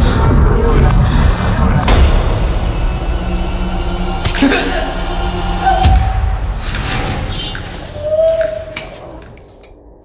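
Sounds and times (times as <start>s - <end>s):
low rumbling drone: 0.0s - 8.3s.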